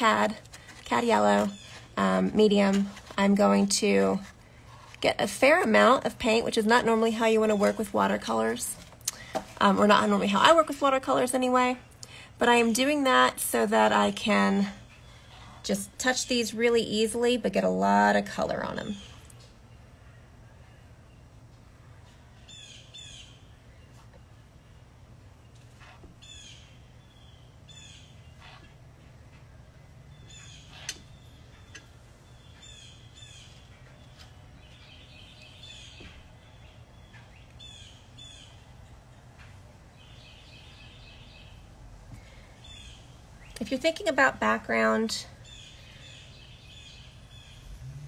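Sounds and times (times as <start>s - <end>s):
low steady hum: 0.0s - 48.0s.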